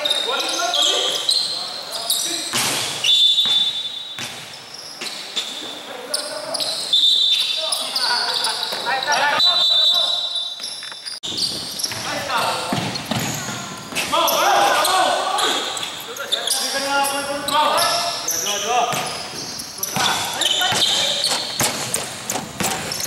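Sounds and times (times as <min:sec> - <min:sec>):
shoe squeals: 0:00.0 - 0:23.0
players shouting: 0:12.2 - 0:18.2
basketball bouncing on hardwood: 0:12.7 - 0:14.1, 0:20.0 - 0:23.0.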